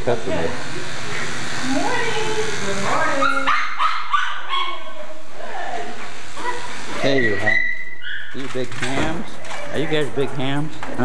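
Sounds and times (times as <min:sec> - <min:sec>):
small dogs barking: 0:03.0 - 0:05.3, 0:06.4 - 0:08.5.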